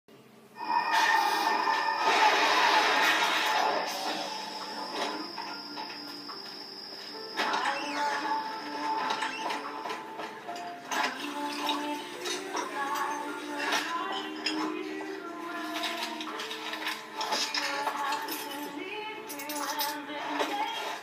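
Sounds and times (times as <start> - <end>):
soft music: 0.5 - 21.0.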